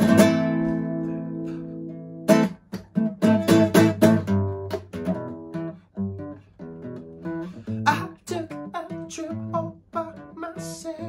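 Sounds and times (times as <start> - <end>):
acoustic guitar strumming: 0.0 - 11.0.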